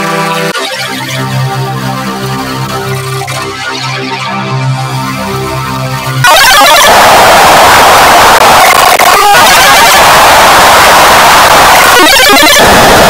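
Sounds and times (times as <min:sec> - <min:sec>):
harsh distorted noise: 0:06.2 - 0:13.0.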